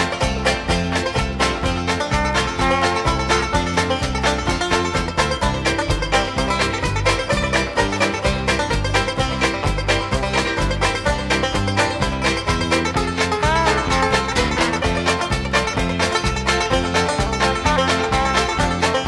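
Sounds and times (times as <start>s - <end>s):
alternating bass line: 0.0s - 19.0s
plucked banjo notes: 0.0s - 19.0s.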